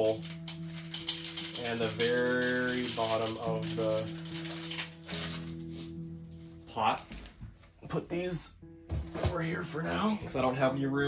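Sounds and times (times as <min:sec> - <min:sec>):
clay beads rattling being poured: 0:00.0 - 0:05.5
music with long held notes: 0:00.0 - 0:07.5.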